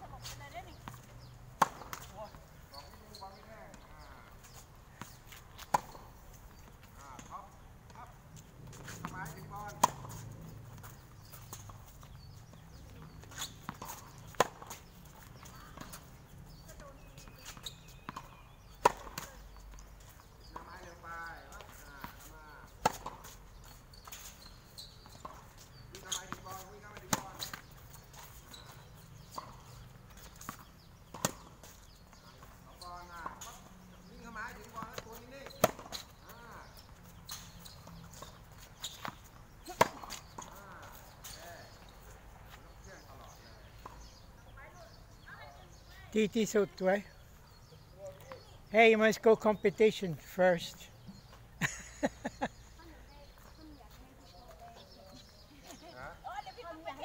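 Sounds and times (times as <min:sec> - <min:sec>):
tennis balls bouncing: 0:00.1 - 0:45.9
rackets hitting tennis balls: 0:00.9 - 0:03.8, 0:08.6 - 0:23.4, 0:24.0 - 0:42.2.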